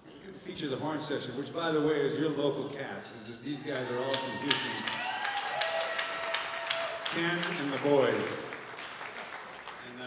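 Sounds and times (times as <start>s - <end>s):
audience hand claps: 3.7s - 10.0s.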